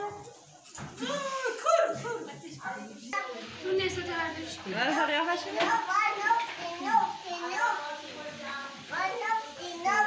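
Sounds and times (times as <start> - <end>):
young child talking: 5.6 - 7.9, 8.9 - 10.0.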